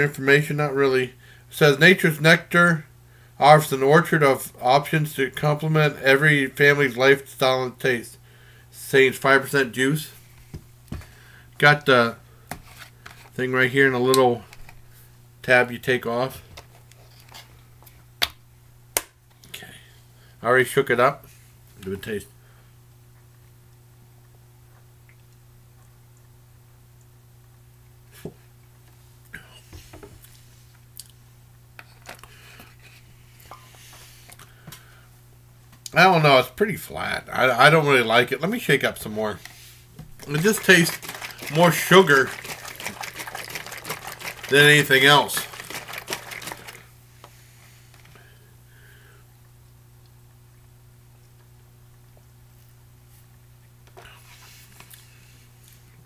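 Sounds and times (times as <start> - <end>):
low steady hum: 0.0 - 56.0
lip smacks and mouth clicks: 24.7 - 26.4, 30.2 - 31.2
carton clicks and rustles: 40.2 - 46.8.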